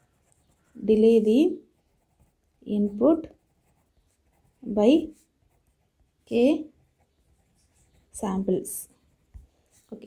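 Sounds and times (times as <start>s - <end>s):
pen scratching on paper: 0.0s - 10.0s
person speaking: 0.8s - 1.6s, 2.6s - 3.4s, 4.5s - 5.3s, 6.3s - 6.7s, 7.9s - 9.0s, 9.7s - 10.0s.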